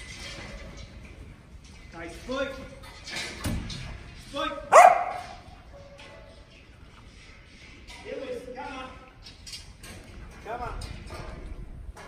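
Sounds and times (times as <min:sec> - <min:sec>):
dog barking: 0:04.7 - 0:05.4.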